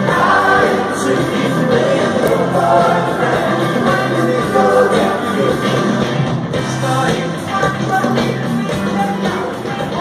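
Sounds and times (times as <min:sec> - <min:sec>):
live rock band with singing: 0:00.0 - 0:10.0.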